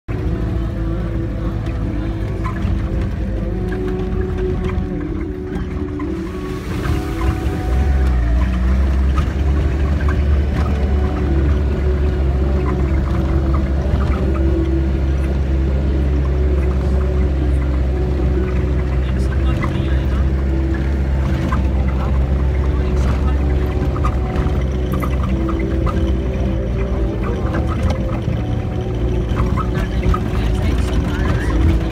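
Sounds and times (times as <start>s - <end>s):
car engine running: 0.1s - 31.9s
rattles and knocks from vehicle: 0.1s - 31.9s.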